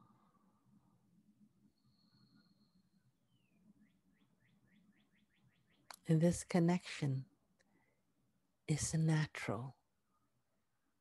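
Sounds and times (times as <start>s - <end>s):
faint bird chirping: 1.4s - 6.1s.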